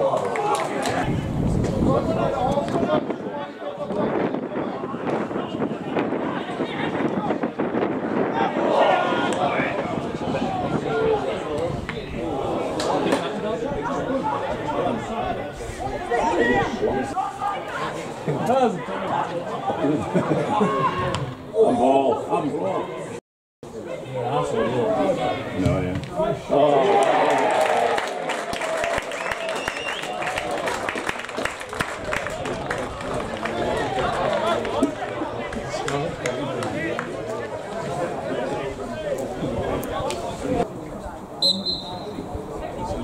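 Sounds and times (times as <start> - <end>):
crowd chatter and calling out: 0.0 - 43.0
players and spectators shouting: 8.2 - 23.2, 23.8 - 31.0.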